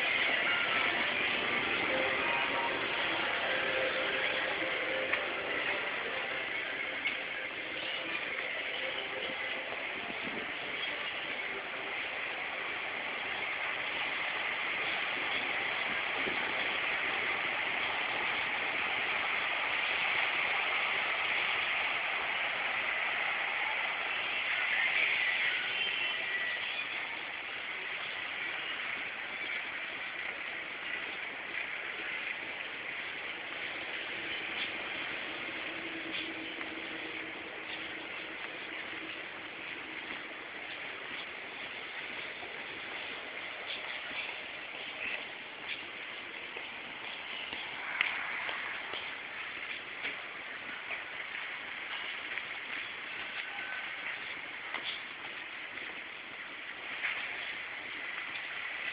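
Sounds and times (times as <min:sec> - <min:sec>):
city street ambience: 0:00.0 - 0:58.9.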